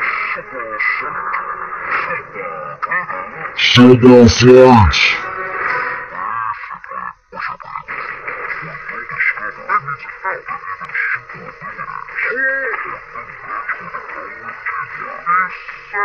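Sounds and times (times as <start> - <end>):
slowed character voices: 3.6 - 5.2.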